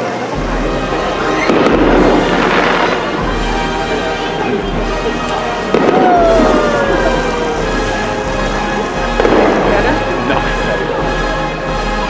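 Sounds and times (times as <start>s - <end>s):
fireworks going off: 0.0s - 12.0s
sharp bang: 1.4s - 3.4s.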